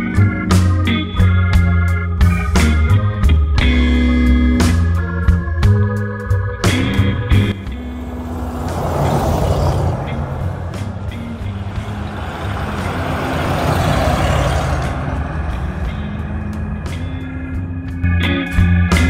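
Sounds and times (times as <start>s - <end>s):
background organ music: 0.0s - 19.0s
car driving past: 7.6s - 18.0s.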